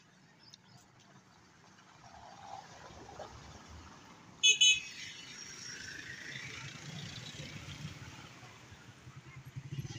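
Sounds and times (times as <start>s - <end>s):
motorcycles running: 6.1s - 9.9s.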